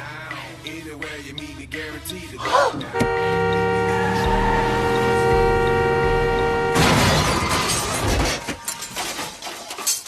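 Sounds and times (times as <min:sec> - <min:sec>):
steam whistle: 0:03.0 - 0:07.0
loud crash: 0:06.7 - 0:08.4
metallic clatters: 0:07.2 - 0:10.0.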